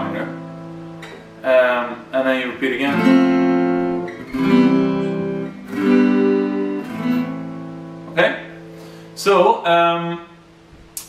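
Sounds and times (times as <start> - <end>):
acoustic guitar chords strummed: 0.0 - 9.2.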